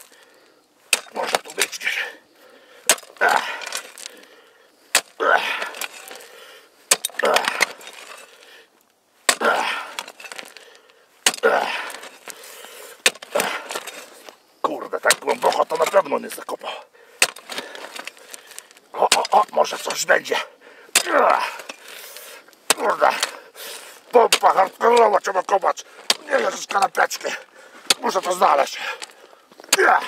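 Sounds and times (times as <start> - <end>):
gritty rasp of soil and gravel: 0.0 - 30.0
post-hole digger striking soil: 0.9 - 1.9, 2.8 - 4.1, 4.9 - 6.3, 6.9 - 8.4, 9.2 - 10.6, 11.2 - 12.4, 13.0 - 14.3, 14.9 - 16.1, 17.2 - 20.1, 20.9 - 21.9, 22.6 - 23.4, 24.0 - 30.0.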